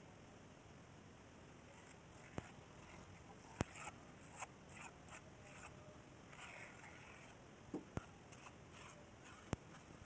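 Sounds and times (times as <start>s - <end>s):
trowel scraping wet cement: 1.7s - 7.4s, 8.3s - 10.0s.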